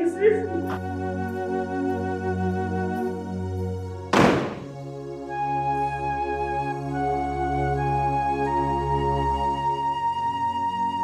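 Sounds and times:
background music: 0.0s - 11.0s
door slamming shut: 4.1s - 4.8s.

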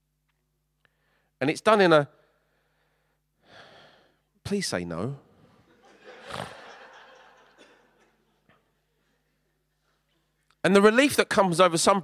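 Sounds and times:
congregation laughing: 5.6s - 10.3s.

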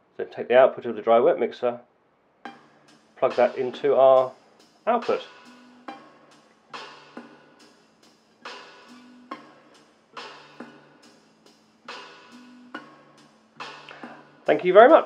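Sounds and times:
synth music with drum beat: 2.4s - 15.0s
resonant bass loop: 2.5s - 15.0s.

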